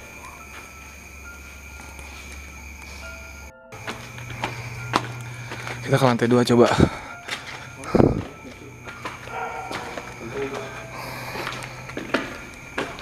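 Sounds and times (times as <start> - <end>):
footsteps on concrete stairs: 3.7 - 13.0.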